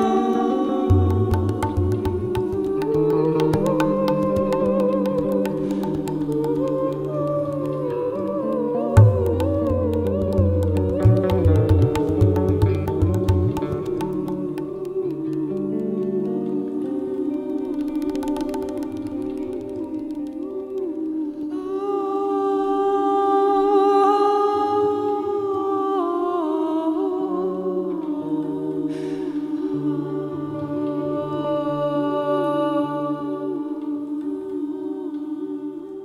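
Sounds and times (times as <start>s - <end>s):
electric guitar drone: 0.0s - 20.8s
woman singing slow melody: 0.0s - 36.0s
deep tabla stroke: 0.9s - 8.1s, 8.9s - 15.5s, 17.7s - 20.4s.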